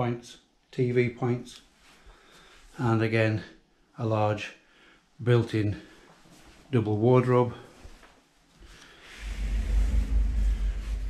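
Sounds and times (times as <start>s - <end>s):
sliding door rolling on track: 9.1s - 11.0s.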